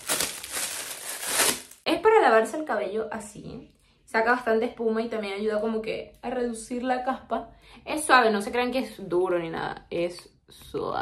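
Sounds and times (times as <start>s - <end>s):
plastic bag crinkling: 0.0s - 1.8s.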